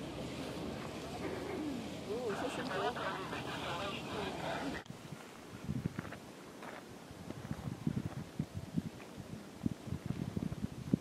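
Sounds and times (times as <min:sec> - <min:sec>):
voices: 0:00.0 - 0:04.9
wind noise: 0:00.0 - 0:11.0
footsteps on gravel: 0:05.1 - 0:08.3.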